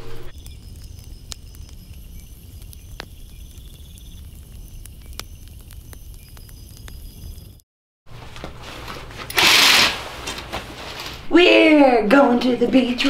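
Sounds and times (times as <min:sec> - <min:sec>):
campfire crackling: 0:00.0 - 0:07.6
faint high chirps: 0:00.3 - 0:07.6.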